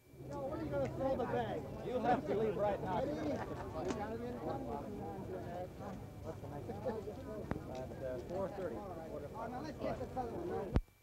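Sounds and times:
indistinct talking: 0:00.0 - 0:10.8.

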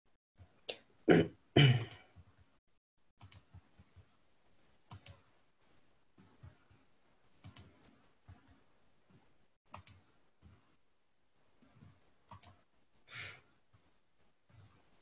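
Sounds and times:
computer mouse clicks: 0:03.2 - 0:04.1, 0:04.9 - 0:05.3, 0:07.4 - 0:10.6, 0:11.6 - 0:12.7.

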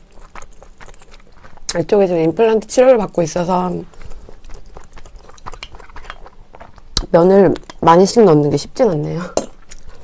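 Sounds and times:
close-up chewing noodles: 0:00.0 - 0:07.8, 0:09.5 - 0:10.0
wet mouth clicks: 0:04.4 - 0:07.8.

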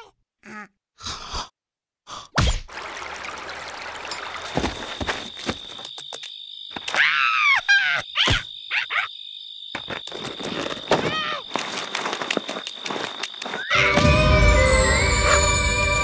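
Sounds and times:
high insect chirr: 0:04.1 - 0:16.0
music: 0:13.7 - 0:16.0.

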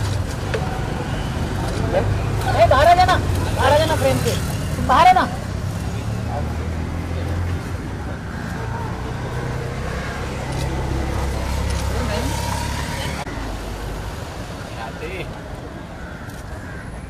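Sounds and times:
street noise: 0:00.0 - 0:17.0.

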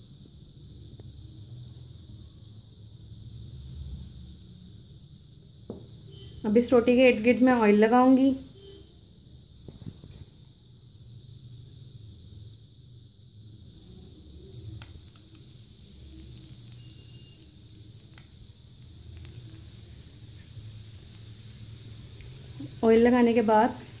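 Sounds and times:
gas burner rumble: 0:09.4 - 0:24.0.

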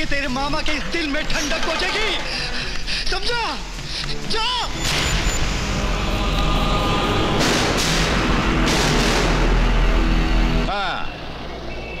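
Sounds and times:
dramatic film score: 0:00.0 - 0:12.0.

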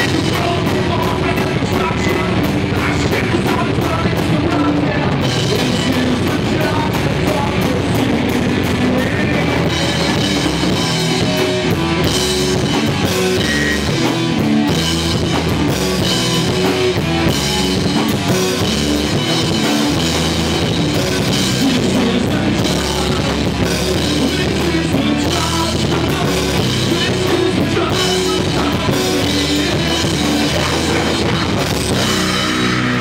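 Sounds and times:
drum kit with cymbal strokes: 0:00.0 - 0:33.0
electric guitars: 0:00.0 - 0:33.0
rock band playing live: 0:00.0 - 0:33.0.

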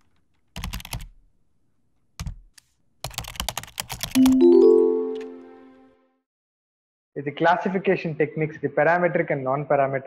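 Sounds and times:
keyboard typing clicks: 0:03.1 - 0:05.4
upward run of musical notes: 0:04.2 - 0:06.0.

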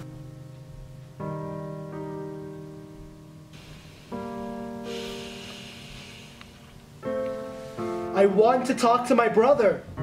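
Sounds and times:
held piano chord: 0:00.0 - 0:10.0.

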